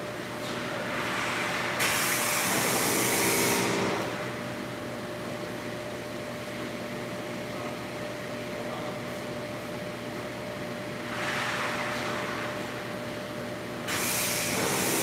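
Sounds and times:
steady mechanical hum: 0.0s - 15.0s
pressure washer spray hissing: 13.9s - 15.0s.

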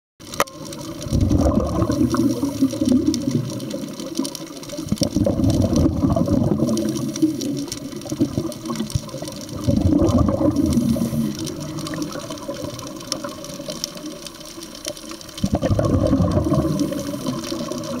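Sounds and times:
air bubbling underwater: 0.7s - 4.1s, 4.7s - 13.6s, 15.4s - 18.0s.

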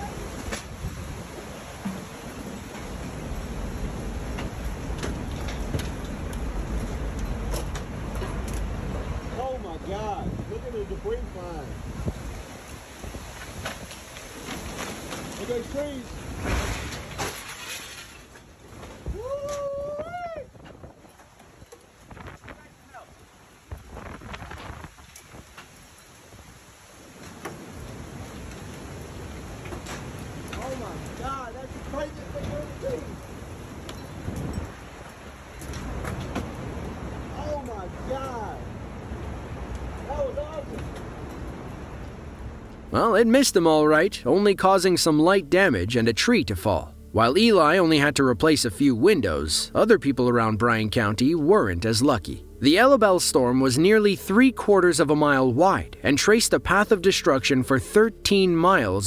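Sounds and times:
wind and rain rushing: 0.0s - 59.0s.

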